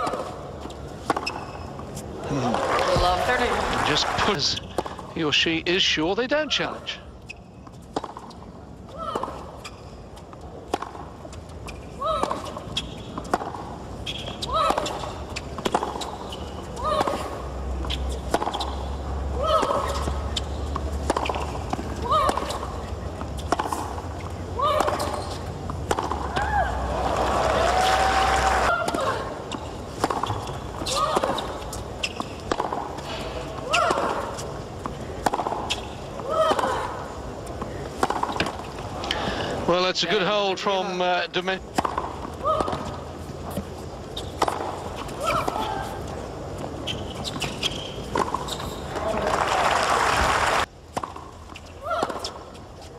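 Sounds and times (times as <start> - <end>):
crowd noise: 2.0 - 7.0, 19.2 - 31.8
racket hitting tennis ball: 19.4 - 22.8, 24.6 - 26.6, 29.9 - 36.8, 37.9 - 38.7.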